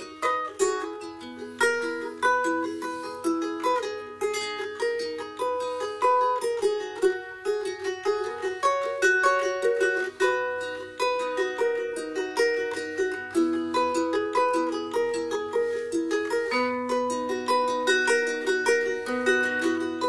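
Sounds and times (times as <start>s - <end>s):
ukulele playing: 0.0s - 20.0s.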